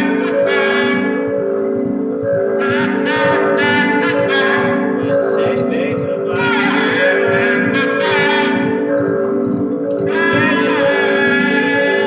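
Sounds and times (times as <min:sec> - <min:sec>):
held chord tones: 0:00.0 - 0:12.0.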